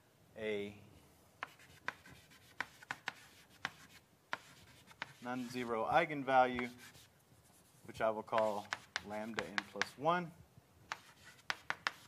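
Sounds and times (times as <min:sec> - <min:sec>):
chalk tapping on blackboard: 0:01.4 - 0:05.7, 0:06.5 - 0:10.0, 0:10.9 - 0:12.0
chalk scratching: 0:01.4 - 0:05.9, 0:06.5 - 0:10.0, 0:10.9 - 0:12.0.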